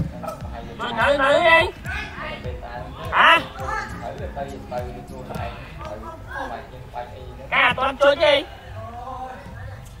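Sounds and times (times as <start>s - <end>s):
low thumping beat: 0.0s - 6.1s.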